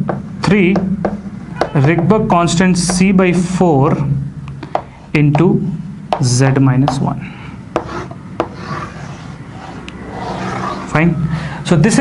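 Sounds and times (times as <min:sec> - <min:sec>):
chalk tapping: 0:00.0 - 0:03.2, 0:04.6 - 0:09.8
chalk scraping on chalkboard: 0:07.8 - 0:10.8.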